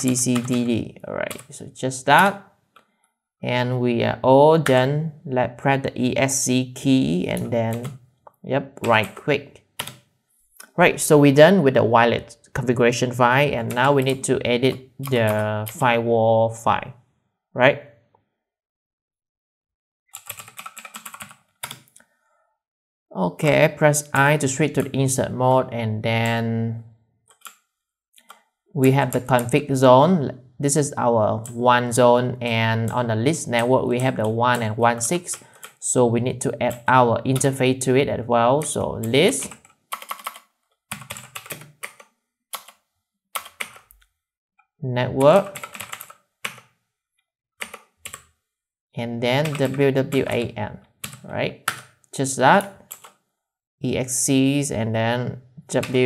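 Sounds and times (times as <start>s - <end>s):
computer keyboard typing: 0.0s - 1.6s, 7.3s - 8.0s, 8.8s - 10.0s, 13.4s - 15.9s, 20.1s - 22.0s, 24.0s - 25.1s, 27.3s - 29.7s, 31.4s - 35.8s, 36.6s - 37.7s, 38.6s - 42.8s, 43.4s - 44.0s, 45.2s - 46.7s, 47.6s - 48.4s, 49.3s - 52.0s, 52.6s - 53.2s.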